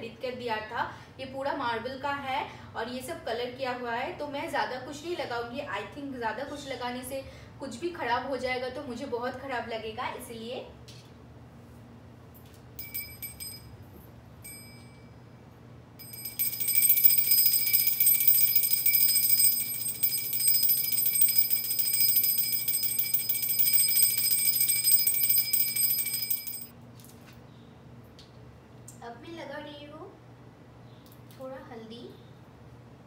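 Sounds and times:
hand bell ringing: 12.8s - 13.7s, 14.4s - 15.0s, 16.0s - 26.7s.

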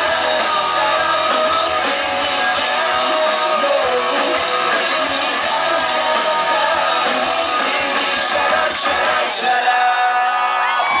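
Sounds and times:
crowd shouting: 0.0s - 11.0s
live rock band playing: 0.0s - 11.0s.

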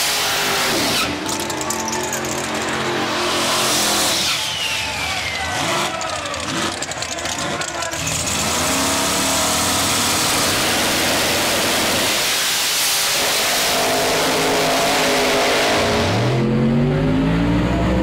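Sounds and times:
race car launching: 0.0s - 16.5s
race car engines revving: 0.0s - 18.0s.

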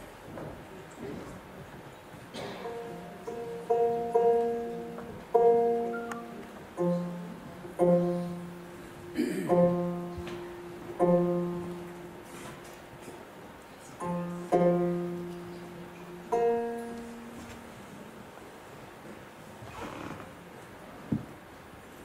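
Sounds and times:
plucked lute chords: 2.5s - 12.3s, 14.0s - 17.7s.

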